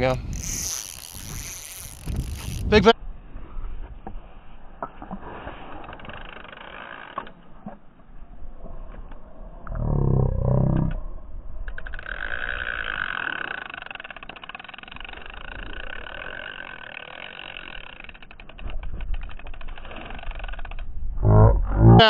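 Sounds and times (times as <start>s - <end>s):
fishing reel clicking rapidly: 0.0s - 3.0s, 5.9s - 7.4s, 11.6s - 21.0s.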